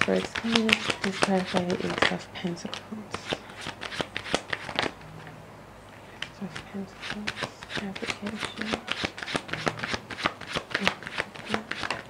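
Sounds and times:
cards being shuffled: 0:00.0 - 0:05.3, 0:06.2 - 0:12.0.

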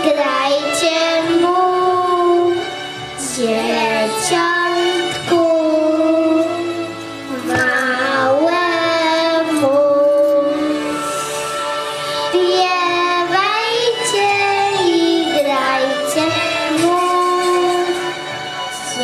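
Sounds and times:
girl singing into a microphone: 0:00.0 - 0:11.2, 0:12.2 - 0:18.2, 0:18.8 - 0:19.0.

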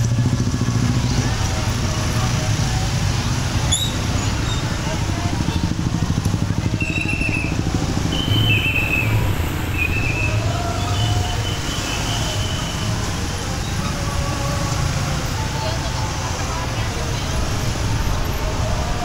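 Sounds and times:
motorbike engine running: 0:00.0 - 0:10.7
street traffic: 0:00.0 - 0:19.0.

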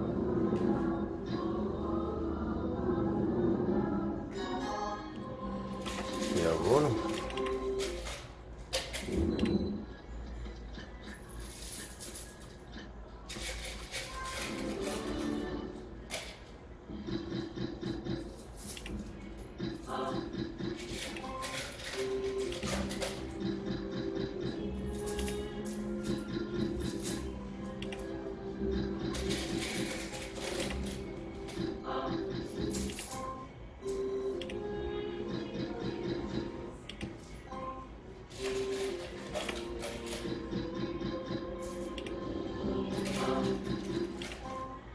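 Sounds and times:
slot reels spinning and clicking: 0:05.6 - 0:37.7, 0:38.3 - 0:44.8
electronic game music: 0:16.8 - 0:44.9.

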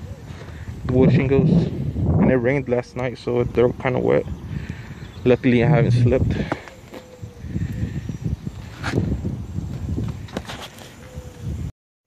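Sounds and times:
footsteps on wet shingle roof: 0:06.2 - 0:07.2, 0:08.5 - 0:11.0.

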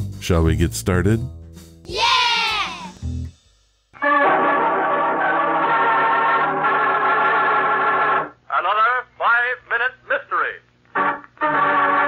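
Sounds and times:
organ music: 0:04.0 - 0:08.3, 0:11.0 - 0:12.0.

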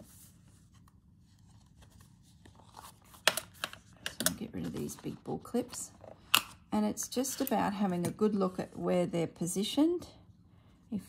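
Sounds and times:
paper pages handled: 0:00.0 - 0:06.3.

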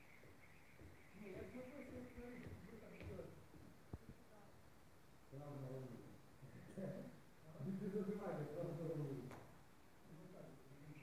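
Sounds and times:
faint indistinct voices: 0:01.0 - 0:04.6.

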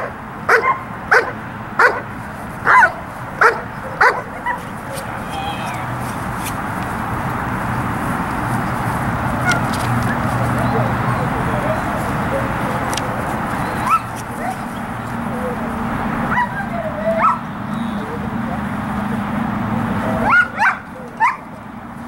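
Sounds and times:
dog yipping and whining: 0:13.6 - 0:14.7, 0:16.3 - 0:18.2, 0:20.1 - 0:21.4.

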